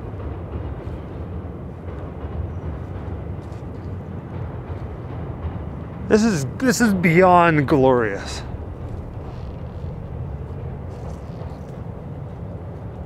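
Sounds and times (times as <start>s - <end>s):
train passing low rumble: 0.0s - 13.0s.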